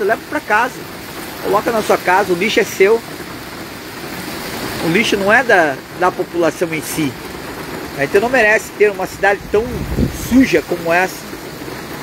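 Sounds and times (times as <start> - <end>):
heavy rain on flooded street: 0.0 - 12.0.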